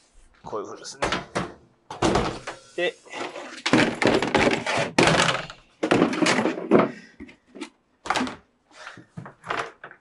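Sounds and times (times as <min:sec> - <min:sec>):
drum cases thunking and scraping: 0:01.0 - 0:08.4.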